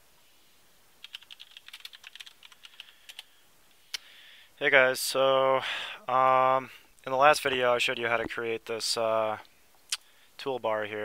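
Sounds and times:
computer keyboard typing: 0:01.0 - 0:03.3.

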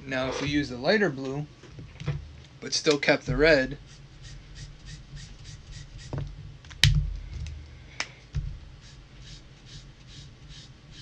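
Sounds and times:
marker nib rubbing on paper: 0:03.8 - 0:06.2, 0:08.8 - 0:11.0.

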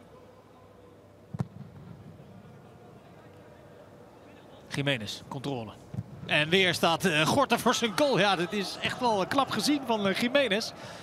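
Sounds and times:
empty stadium ambience: 0:00.0 - 0:11.0.

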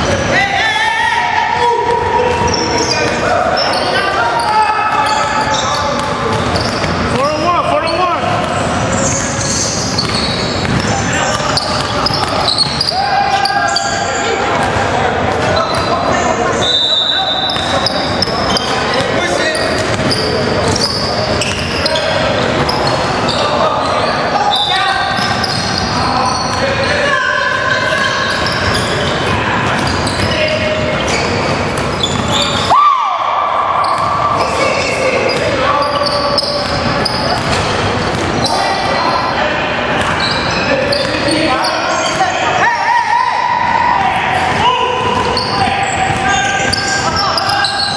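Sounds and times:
players calling out: 0:00.0 - 0:47.9
basketball bouncing in gym: 0:01.5 - 0:47.9.

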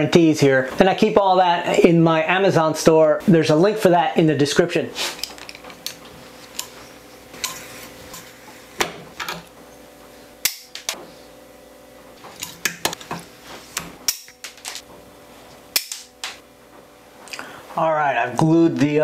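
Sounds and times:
pliers clicking on metal wire: 0:10.4 - 0:11.0, 0:14.1 - 0:14.8, 0:15.8 - 0:16.4.

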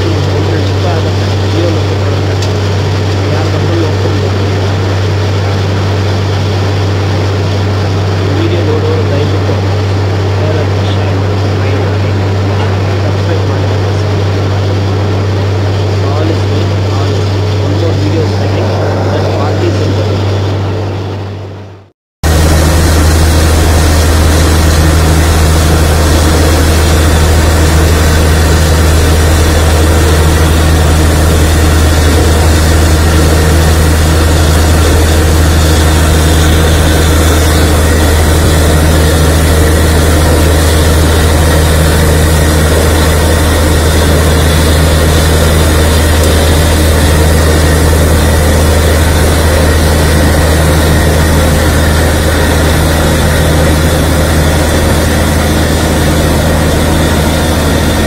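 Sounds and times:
drilling rig humming: 0:00.0 - 0:58.0.

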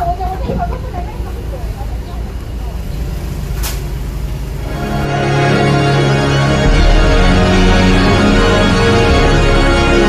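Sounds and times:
faint voices: 0:00.0 - 0:03.3
brief hiss: 0:03.5 - 0:03.9.

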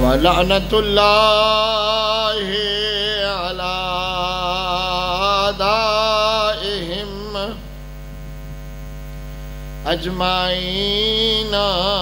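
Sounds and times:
man chanting: 0:00.0 - 0:07.7, 0:09.8 - 0:12.0
electrical mains hum: 0:00.0 - 0:12.0.

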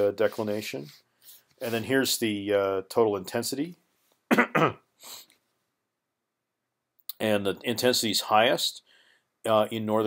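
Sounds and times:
man coughing: 0:04.3 - 0:04.9
short breath: 0:05.0 - 0:05.4, 0:08.8 - 0:09.4.

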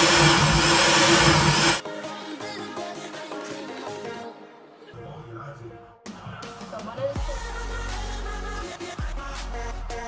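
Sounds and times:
electric blender running: 0:00.0 - 0:01.8.

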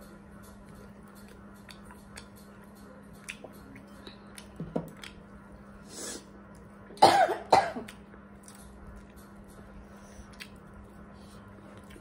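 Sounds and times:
person coughing: 0:07.0 - 0:07.9.

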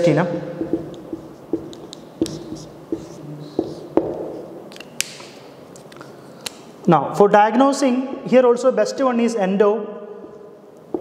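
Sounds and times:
marker tapping on whiteboard: 0:00.6 - 0:04.4
marker scratching on whiteboard: 0:00.6 - 0:04.6.

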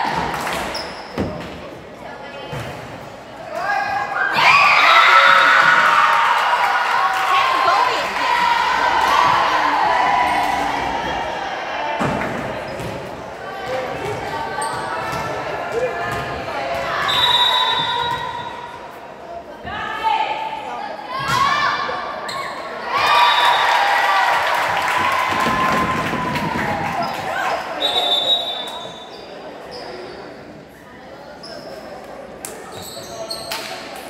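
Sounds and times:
voices echoing in hall: 0:00.0 - 0:34.0
shoe squeaks on gym floor: 0:00.7 - 0:01.3, 0:27.9 - 0:30.4, 0:31.4 - 0:32.0, 0:32.6 - 0:33.9.

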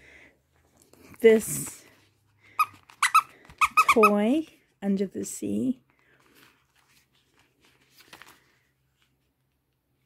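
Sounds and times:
squeaker toy squeaks: 0:02.6 - 0:04.3.

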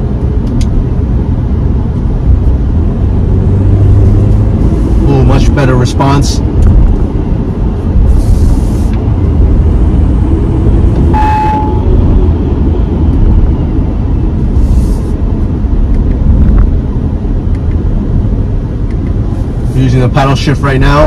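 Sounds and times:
road and engine rumble in car cabin: 0:00.0 - 0:21.0
short single tone: 0:11.1 - 0:12.0.

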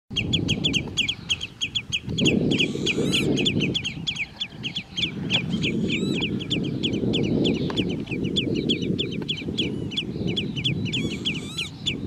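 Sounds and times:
wading birds alarm calls: 0:00.2 - 0:12.0.

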